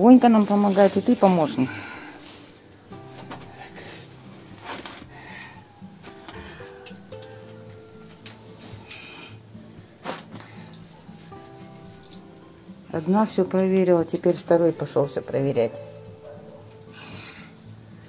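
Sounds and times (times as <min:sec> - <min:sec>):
material rubbing and rustling: 0:00.0 - 0:05.5, 0:10.9 - 0:12.3
quiet background music: 0:00.0 - 0:18.0.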